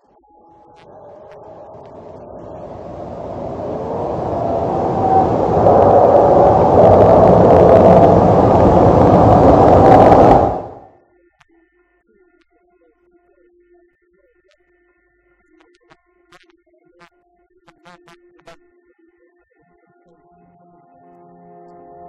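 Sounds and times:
jet engine with afterburner roaring: 0:00.8 - 0:10.9.

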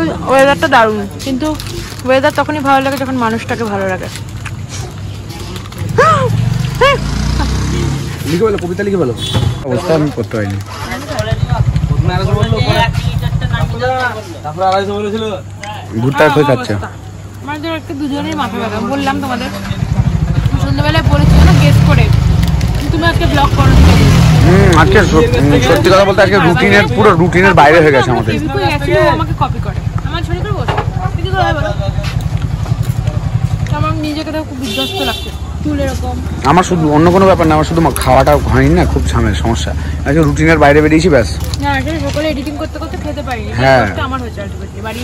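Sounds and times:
vehicle engine running: 0:00.0 - 0:09.3, 0:10.3 - 0:14.2, 0:17.2 - 0:45.0
voices talking: 0:00.0 - 0:45.0.

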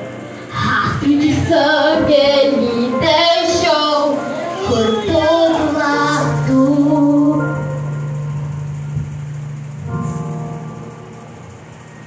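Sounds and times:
instrumental accompaniment: 0:00.0 - 0:12.0
girl singing into a microphone: 0:00.6 - 0:07.7.

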